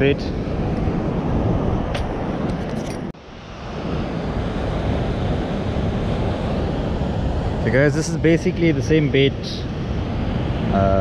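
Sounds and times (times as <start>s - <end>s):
beach surf hissing: 0.0s - 11.0s
wind rumbling on microphone: 0.0s - 11.0s.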